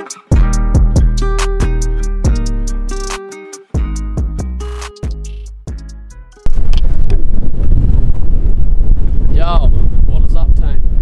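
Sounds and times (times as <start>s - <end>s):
wind buffeting microphone: 6.4s - 11.0s.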